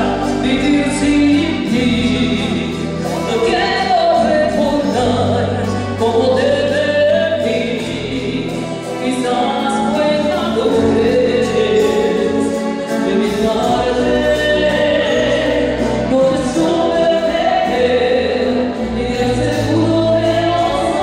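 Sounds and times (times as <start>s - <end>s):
instrumental accompaniment: 0.0s - 21.0s
woman singing a ballad: 0.0s - 21.0s.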